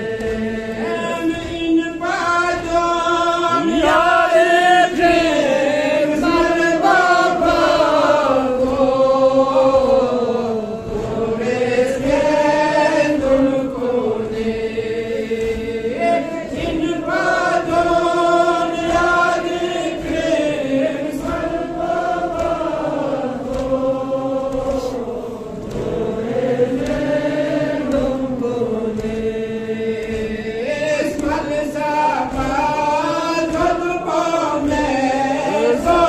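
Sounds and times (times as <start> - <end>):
man chanting a lament: 0.0 - 8.4, 14.6 - 21.5, 28.4 - 36.0.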